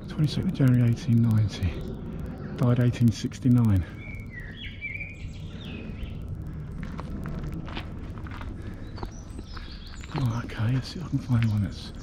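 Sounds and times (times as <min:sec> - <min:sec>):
birds chirping: 0:00.0 - 0:12.0
footsteps on dirt path: 0:06.6 - 0:12.0.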